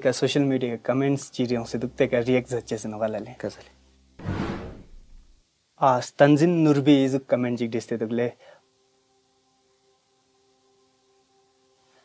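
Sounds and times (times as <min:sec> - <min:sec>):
short whoosh: 0:04.2 - 0:05.4.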